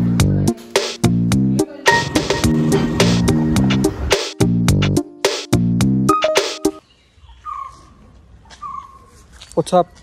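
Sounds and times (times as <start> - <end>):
bird calling: 6.8 - 9.3.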